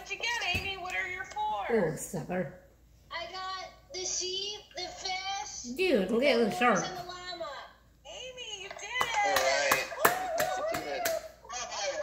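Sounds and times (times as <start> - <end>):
hand claps: 9.0 - 11.3.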